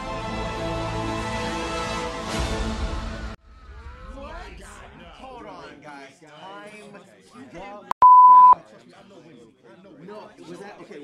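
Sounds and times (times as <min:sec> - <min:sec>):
censor bleep: 0:07.9 - 0:08.6.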